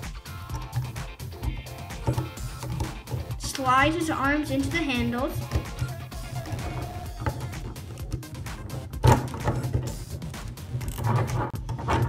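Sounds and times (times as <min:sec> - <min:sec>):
background music with low beat: 0:00.0 - 0:12.0
plastic toy clicks and knocks: 0:00.4 - 0:03.4.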